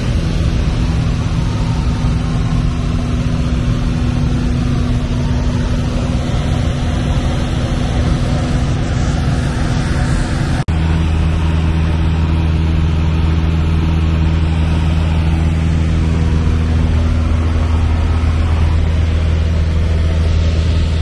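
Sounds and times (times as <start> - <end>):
aircraft engine and propeller droning: 0.0 - 21.0.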